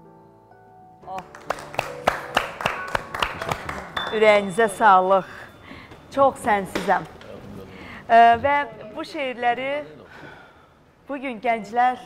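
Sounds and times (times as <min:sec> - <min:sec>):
hands clapping in applause: 0:01.1 - 0:04.2.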